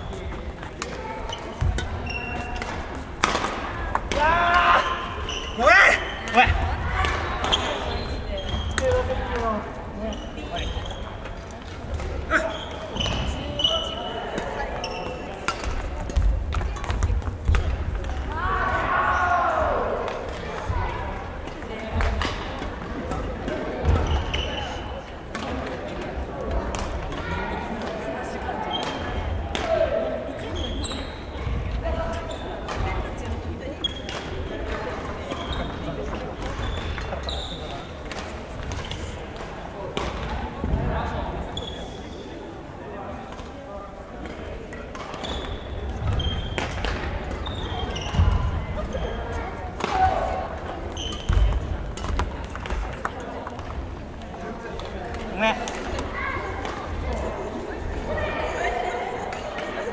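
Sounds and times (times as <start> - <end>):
shoes squeaking on court: 0.0 - 3.6, 4.8 - 6.6, 7.4 - 9.1, 10.0 - 17.2, 30.4 - 33.0, 33.6 - 39.3, 41.4 - 42.3, 44.9 - 49.5, 50.7 - 55.2
murmur of voices: 0.0 - 59.9
racket hitting shuttlecock: 0.8 - 4.3.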